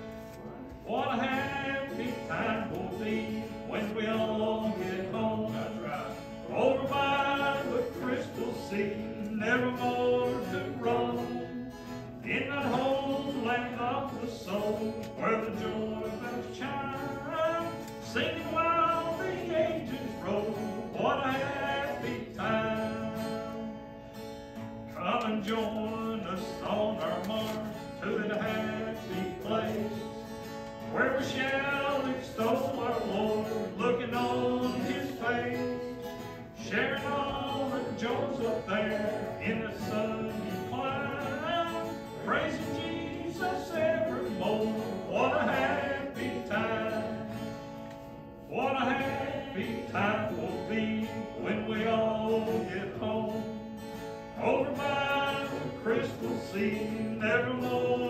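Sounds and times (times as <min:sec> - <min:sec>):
acoustic guitar: 0:00.0 - 0:58.0
voices singing a hymn: 0:00.7 - 0:23.7, 0:24.9 - 0:47.7, 0:48.4 - 0:58.0.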